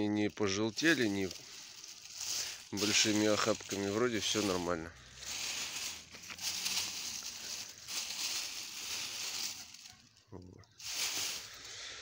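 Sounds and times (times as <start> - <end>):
dried leaves rustling: 0.0 - 12.0.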